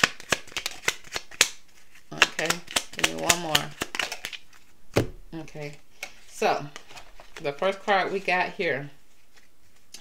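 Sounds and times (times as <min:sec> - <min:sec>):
cards being shuffled: 0:00.0 - 0:05.1, 0:09.1 - 0:10.0.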